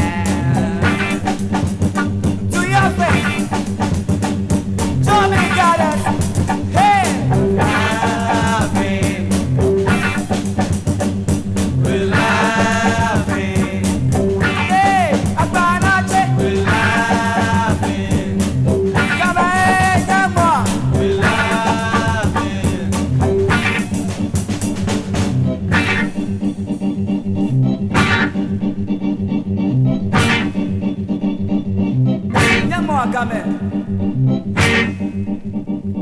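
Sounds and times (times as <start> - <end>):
person singing: 0.0 - 1.6, 2.5 - 3.6, 5.0 - 10.1, 11.8 - 24.1, 32.3 - 33.9
funk band playing: 0.0 - 36.0.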